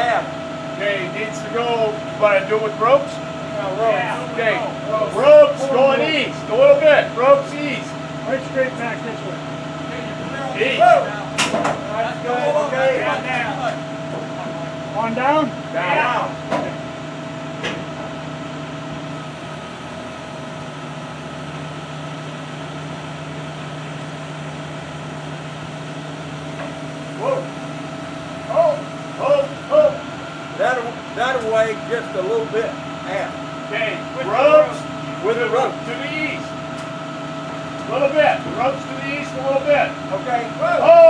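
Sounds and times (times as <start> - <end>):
men calling out: 0.0 - 16.5, 27.1 - 27.7, 28.3 - 36.6, 37.8 - 41.0
machinery humming: 0.0 - 41.0.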